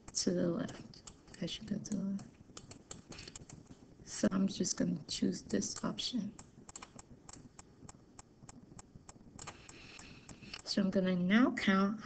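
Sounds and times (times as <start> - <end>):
computer mouse clicking: 0.0 - 3.8, 5.4 - 10.7.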